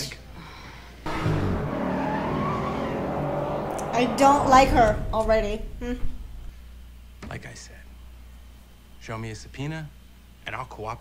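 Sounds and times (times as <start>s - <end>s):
car driving by: 1.0s - 6.6s.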